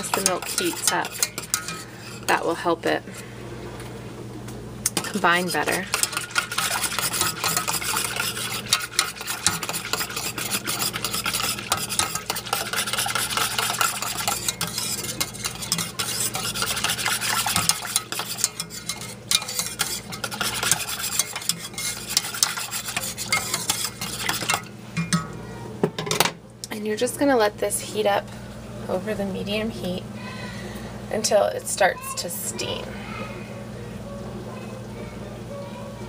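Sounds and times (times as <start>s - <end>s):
wire whisk rattling against pan: 0.0s - 2.6s, 4.9s - 25.2s.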